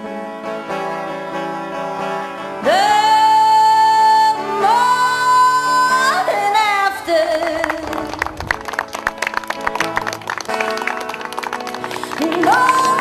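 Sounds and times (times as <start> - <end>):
background song: 11.8 - 13.0.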